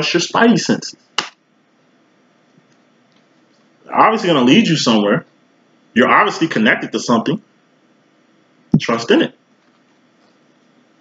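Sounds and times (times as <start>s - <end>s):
man talking: 0.0s - 1.0s, 3.9s - 5.2s, 6.0s - 7.4s, 8.8s - 9.4s.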